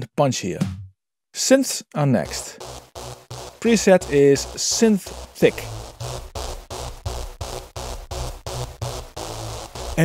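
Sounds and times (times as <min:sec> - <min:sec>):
synthesizer repeated notes: 0:02.2 - 0:10.0
heavy sub-bass: 0:02.3 - 0:10.0.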